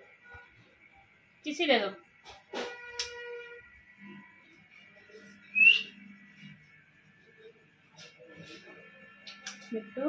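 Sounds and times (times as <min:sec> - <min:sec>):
parakeet whistle-like chirp: 0:05.5 - 0:05.9.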